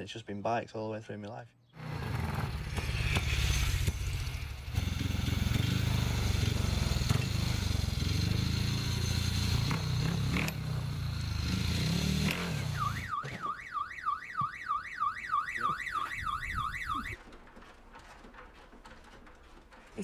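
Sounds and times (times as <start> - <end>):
motorbike engine revving: 1.8 - 13.2
electronic alarm warbling: 12.5 - 17.2.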